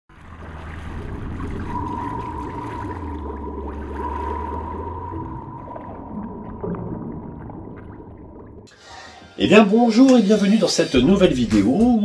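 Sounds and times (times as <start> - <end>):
low rumble with water noise: 0.1 - 8.7
steady high tone: 1.7 - 6.6.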